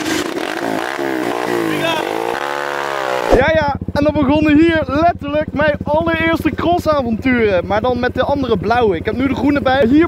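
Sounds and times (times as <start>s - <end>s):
motorbike engine revving: 0.0s - 4.0s.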